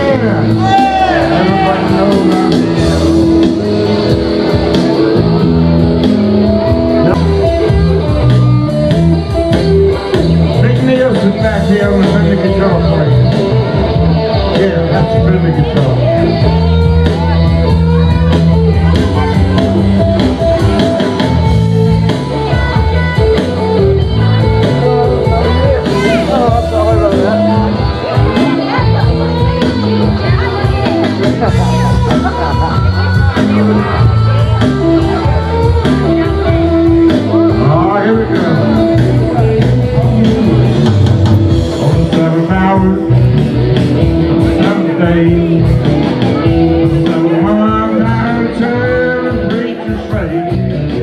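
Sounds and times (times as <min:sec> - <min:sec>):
electric guitar: 0:00.0 - 0:51.0
live band playing: 0:00.0 - 0:51.0.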